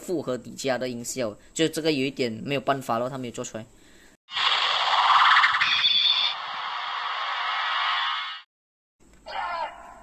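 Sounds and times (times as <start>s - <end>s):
electronic rushing sound effect: 4.3s - 8.4s.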